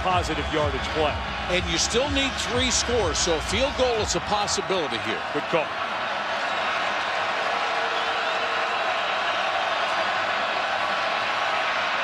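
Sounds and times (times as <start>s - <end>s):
stadium crowd yelling: 0.0s - 12.0s.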